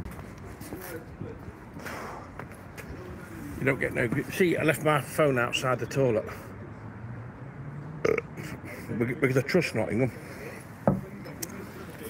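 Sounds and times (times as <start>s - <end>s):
man burping: 8.0s - 8.8s.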